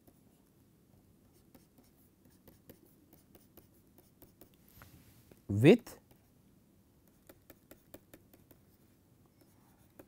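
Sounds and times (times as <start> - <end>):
stylus scratching on tablet screen: 1.3 - 4.6, 7.0 - 10.0.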